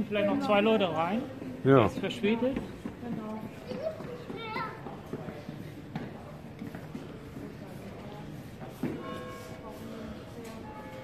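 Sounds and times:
indistinct street voices: 0.0 - 11.0.

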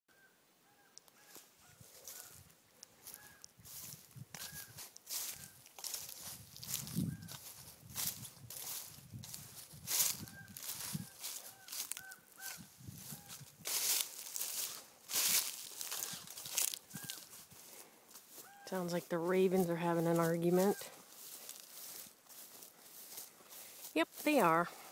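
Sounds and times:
ravens calling: 0.6 - 3.5, 10.0 - 13.6, 15.7 - 19.0
footsteps through grass: 1.1 - 24.9.

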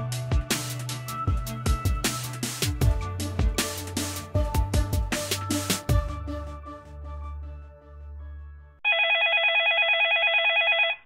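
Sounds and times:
electronic telephone ringer trilling: 8.8 - 11.0.

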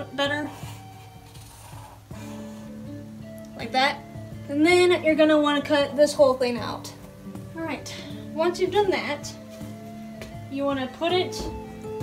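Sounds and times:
soft plucked-string music: 0.0 - 12.0.

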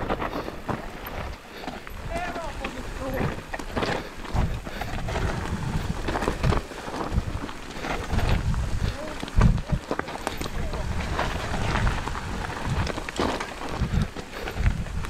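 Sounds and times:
bike clattering and rattling: 0.0 - 15.0
bike tyres on dirt and stones: 0.0 - 15.0.

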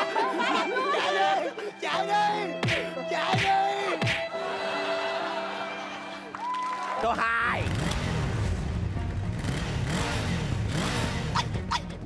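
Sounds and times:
low engine-like revving: 7.5 - 12.0.

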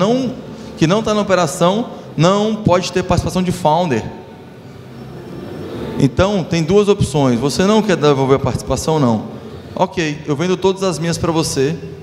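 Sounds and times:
crowded hall din: 0.0 - 12.0.

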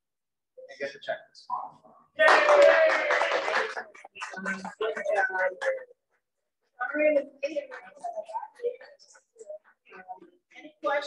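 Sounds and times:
audience clapping: 2.2 - 6.1.

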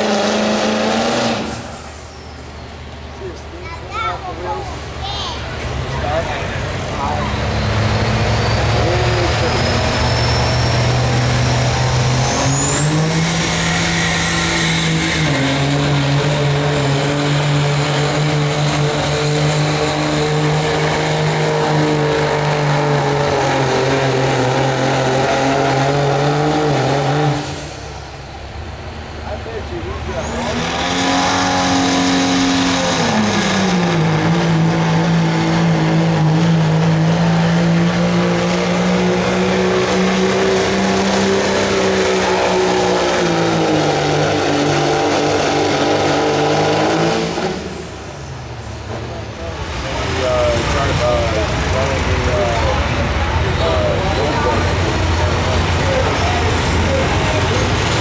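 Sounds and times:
diesel engine drone: 0.0 - 58.0
high engine whine: 0.0 - 58.0.

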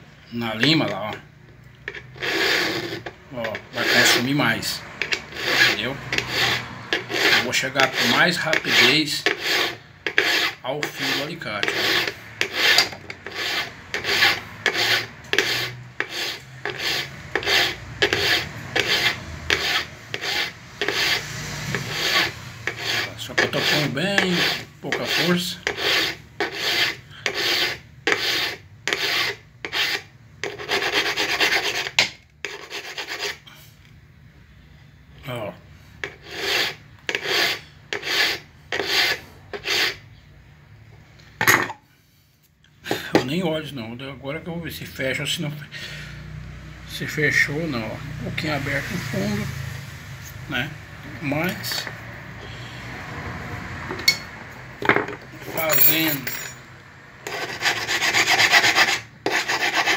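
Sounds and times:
file rasping on pliers: 1.9 - 4.3, 4.9 - 33.4, 36.0 - 40.0, 55.6 - 56.6, 57.2 - 59.9.

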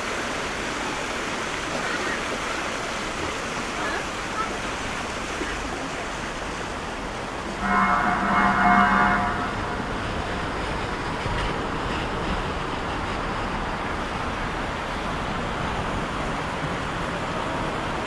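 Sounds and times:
fountain water cascading: 0.0 - 11.8, 12.6 - 18.0
city traffic hum: 0.0 - 18.0
vehicle horn: 7.6 - 9.9.

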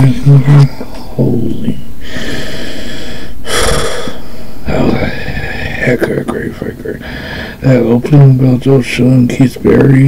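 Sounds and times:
man breathing hard: 2.0 - 4.6, 7.0 - 7.6.

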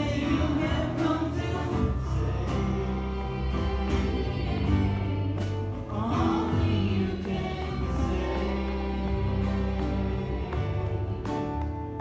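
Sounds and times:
group of young voices singing: 0.0 - 11.3
electric bass guitar: 0.0 - 12.0.

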